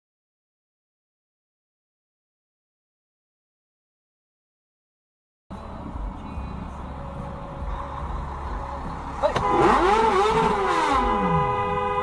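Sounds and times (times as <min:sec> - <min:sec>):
car engine and road rumble: 0:05.5 - 0:12.0
steady horn tone: 0:09.2 - 0:12.0.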